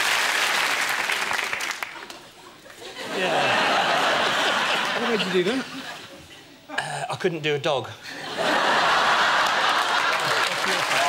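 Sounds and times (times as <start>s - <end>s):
audience applauding: 0.0s - 2.3s, 8.7s - 11.0s.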